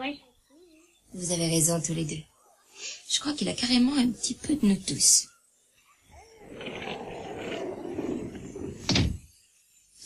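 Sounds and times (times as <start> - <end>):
door shutting with a thud: 8.6 - 9.3.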